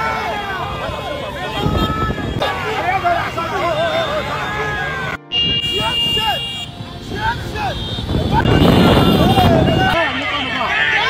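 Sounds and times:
many motorcycles running: 0:00.0 - 0:11.0
voices shouting: 0:00.0 - 0:11.0.

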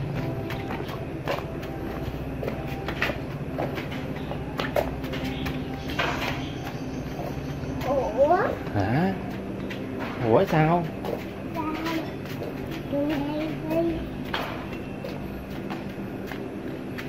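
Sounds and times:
scattered clicks and knocks: 0:09.4 - 0:17.0.

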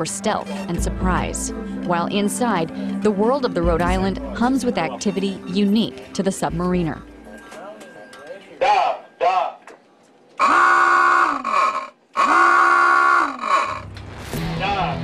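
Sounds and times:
alarm klaxon blasts: 0:10.4 - 0:13.9.

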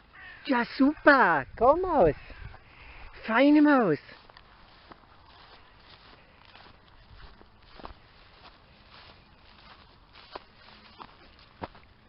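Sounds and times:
grass rustling: 0:00.0 - 0:12.0
footsteps in long grass: 0:02.2 - 0:12.0.

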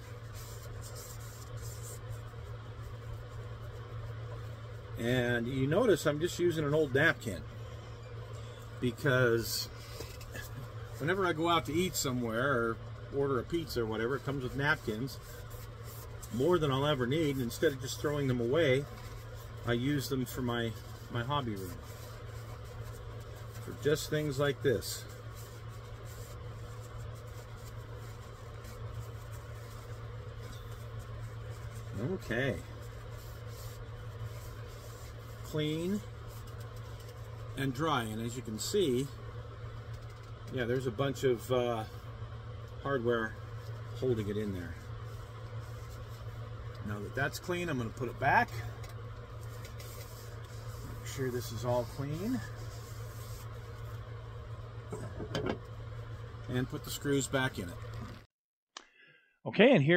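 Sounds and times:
paper napkin rubbing: 0:00.0 - 0:07.5, 0:08.4 - 0:38.8, 0:42.6 - 0:58.2
steady low hum: 0:00.0 - 0:59.9.

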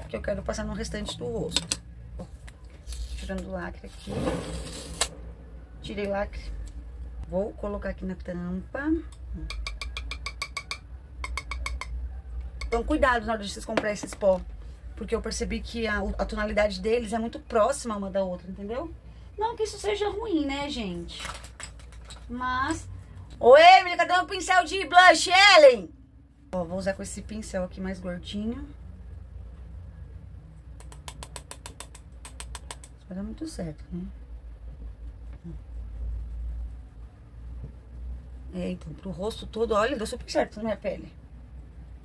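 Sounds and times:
steady low hum: 0:00.0 - 0:21.0, 0:25.8 - 0:42.0.

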